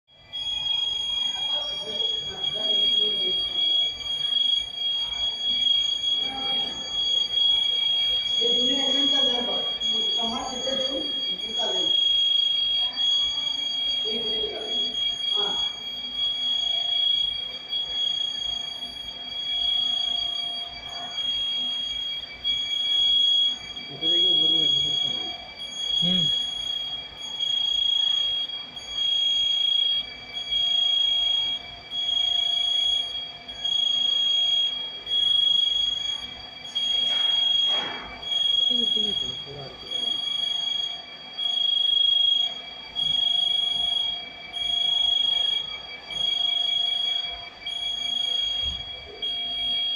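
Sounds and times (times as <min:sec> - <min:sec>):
pulsing electronic warning beeper: 0:00.1 - 0:49.9.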